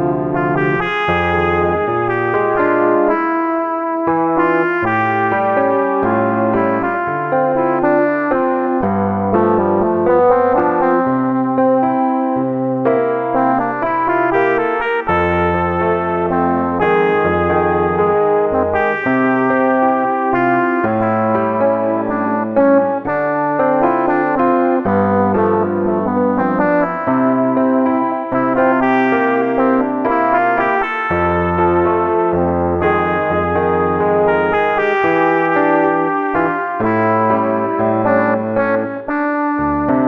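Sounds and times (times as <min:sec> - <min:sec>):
synthesizer bass line: 0:00.0 - 0:03.3, 0:04.1 - 0:40.0
synthesizer chords and melody: 0:00.0 - 0:40.0.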